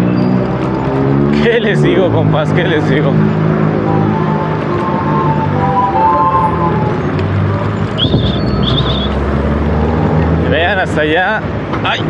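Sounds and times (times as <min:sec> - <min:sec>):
city street traffic: 0:00.0 - 0:12.0
music playing: 0:03.6 - 0:07.9.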